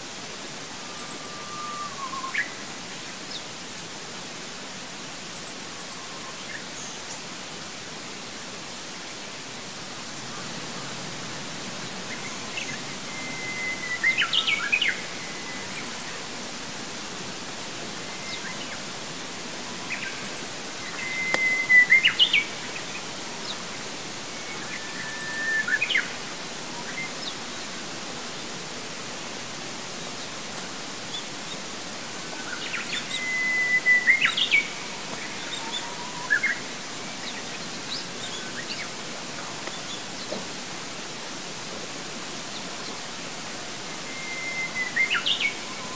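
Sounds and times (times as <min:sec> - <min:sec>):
steady background hiss: 0:00.0 - 0:45.9
songbird singing: 0:00.7 - 0:03.9, 0:05.2 - 0:07.4, 0:09.0 - 0:41.3, 0:42.1 - 0:45.9.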